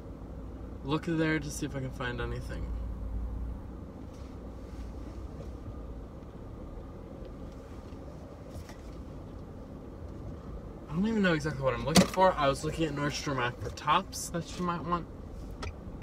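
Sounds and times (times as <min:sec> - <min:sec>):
car engine and road noise: 0:00.0 - 0:16.0.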